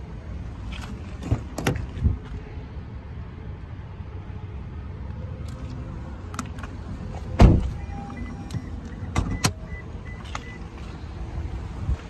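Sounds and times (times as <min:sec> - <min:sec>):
car door shutting thud: 0:07.4 - 0:07.8.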